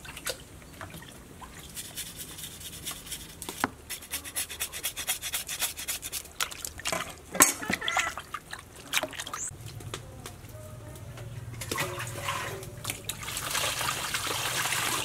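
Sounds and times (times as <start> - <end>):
hands rubbing meat in basin: 1.6 - 6.8
cleaver scraping meat: 1.7 - 6.6.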